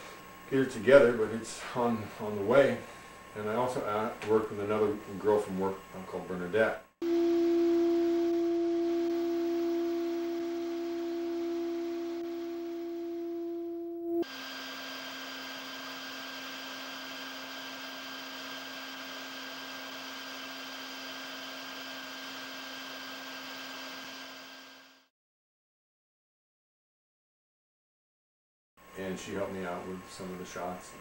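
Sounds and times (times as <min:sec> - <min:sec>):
electronic tone drone: 0:07.0 - 0:25.1.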